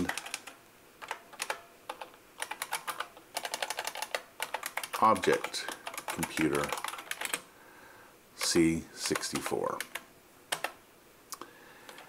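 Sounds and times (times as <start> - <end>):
computer keyboard typing: 0.0 - 7.5, 8.4 - 10.8.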